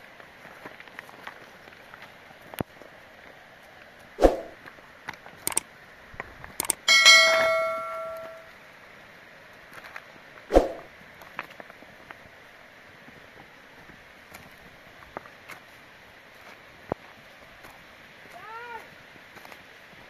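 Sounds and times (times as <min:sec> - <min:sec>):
scattered clicks: 0:06.6 - 0:08.4
metal object clanging: 0:06.6 - 0:08.5.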